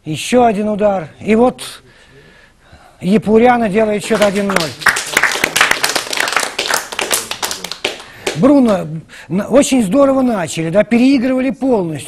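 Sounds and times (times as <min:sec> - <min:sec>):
hand clapping: 0:04.0 - 0:08.9.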